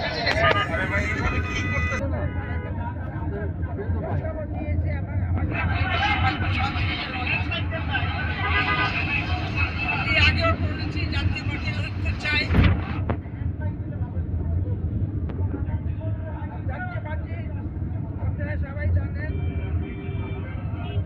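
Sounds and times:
people talking: 0.0 - 21.0.

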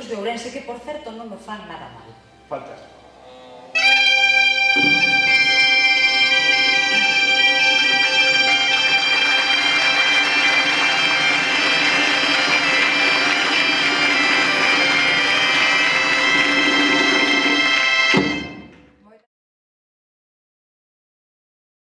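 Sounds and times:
bagpipes playing over drones: 3.7 - 18.7
thump: 18.1 - 18.9.

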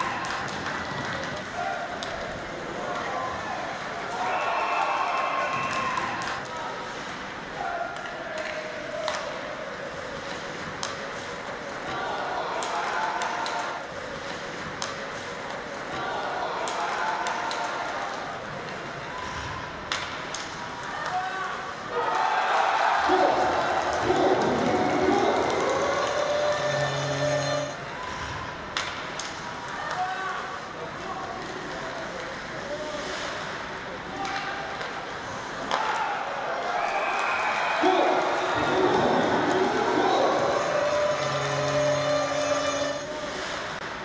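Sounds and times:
crowd noise: 0.0 - 44.0
public address voice or music: 23.1 - 27.8, 37.8 - 43.6
steady horn: 25.7 - 27.8, 38.6 - 43.6.

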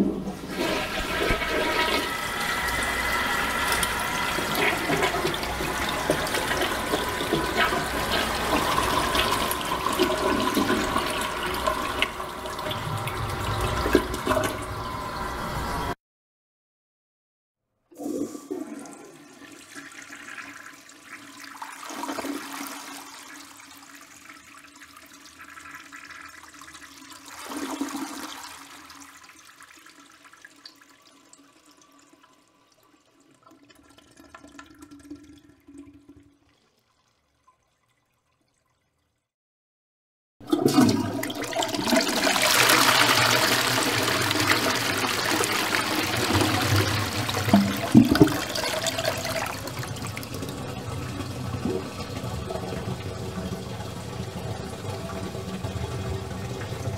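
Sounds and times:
toilet flushing: 0.0 - 16.0, 17.9 - 36.9, 40.4 - 56.9.

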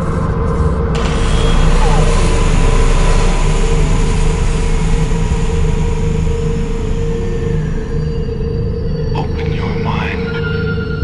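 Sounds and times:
low droning tone: 0.0 - 11.0.

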